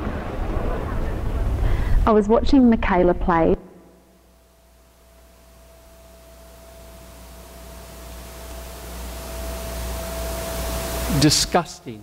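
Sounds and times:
low hum: 0:00.0 - 0:11.6
steady hiss: 0:00.0 - 0:12.0
thin steady tone: 0:03.8 - 0:12.0.

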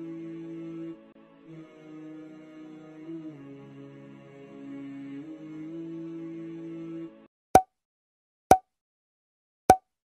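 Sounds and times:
music with long held tones: 0:00.0 - 0:07.2.

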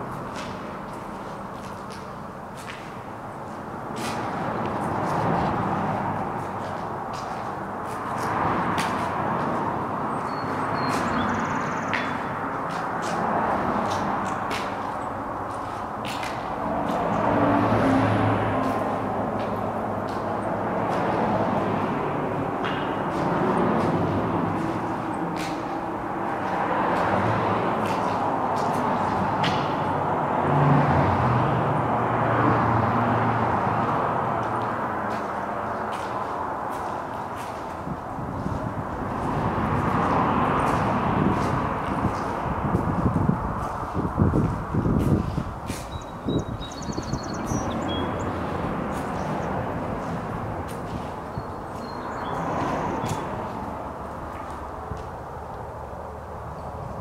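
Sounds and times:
passing traffic: 0:00.0 - 0:57.0.

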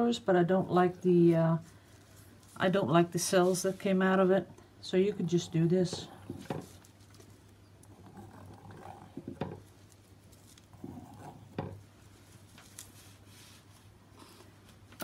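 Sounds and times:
soft rubbing: 0:00.8 - 0:08.5, 0:09.6 - 0:14.8.

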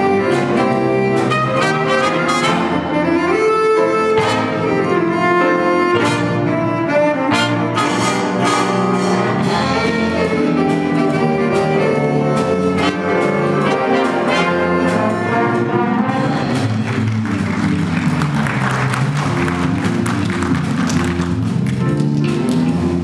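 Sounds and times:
jazz big band playing: 0:00.0 - 0:23.0.

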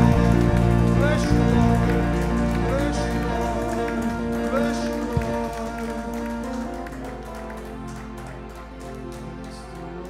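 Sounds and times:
held keyboard chords: 0:00.0 - 0:10.0.

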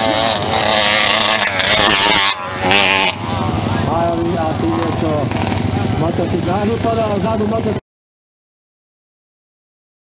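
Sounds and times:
motorcycle passing at high revs: 0:00.0 - 0:07.8.

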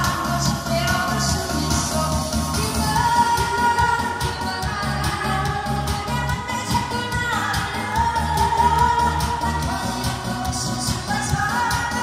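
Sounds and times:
backing track with bass beat: 0:00.0 - 0:12.0
woman singing into microphone: 0:00.0 - 0:12.0.

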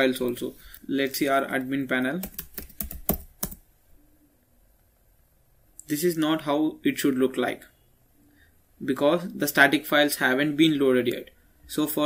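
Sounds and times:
computer keyboard keystrokes: 0:02.2 - 0:03.6.

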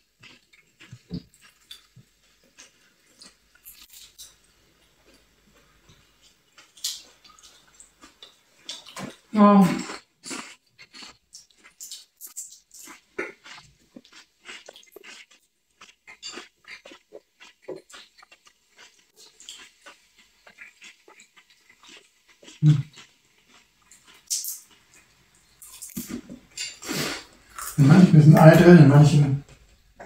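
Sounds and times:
chewing and crunching: 0:00.0 - 0:27.9.

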